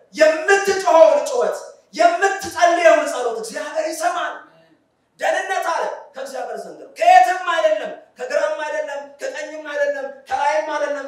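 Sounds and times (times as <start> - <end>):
man speaking into a microphone: 0.0 - 11.0.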